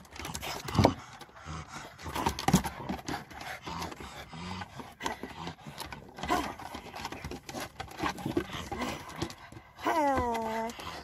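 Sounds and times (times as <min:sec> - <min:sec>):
claws clicking on wooden boards: 0:00.0 - 0:11.0
dogs snuffling: 0:00.0 - 0:11.0.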